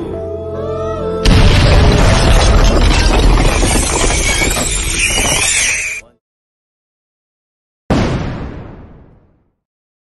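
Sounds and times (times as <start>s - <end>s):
explosion rumbling: 1.3s - 5.5s, 7.9s - 9.4s
debris crashing: 1.3s - 6.0s.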